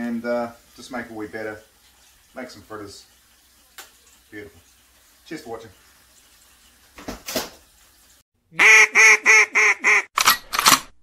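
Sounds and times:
duck-like quacking: 8.6 - 10.1.

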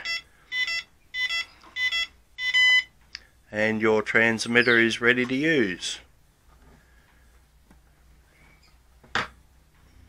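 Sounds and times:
transmitter buzzer beeping: 0.0 - 2.9.

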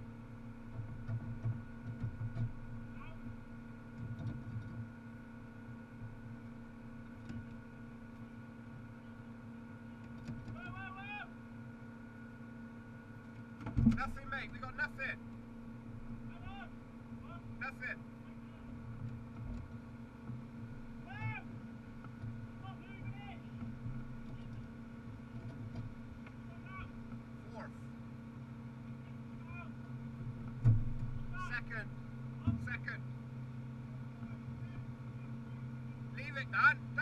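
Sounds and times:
car engine idling: 13.9 - 37.0.

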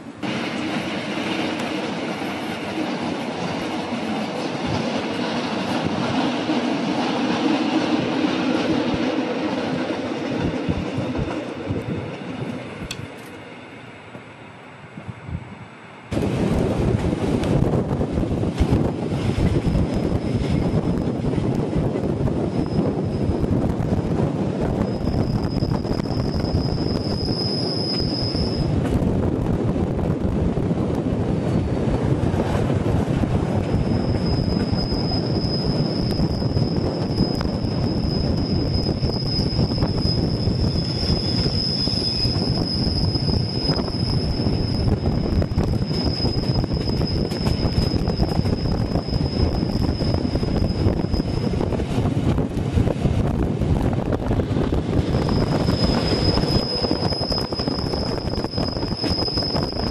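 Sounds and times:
train carriages rumbling on track: 0.0 - 14.3, 16.1 - 59.9
wheel flange squeal: 22.4 - 23.5, 24.8 - 28.8, 33.6 - 51.7, 55.0 - 59.9.

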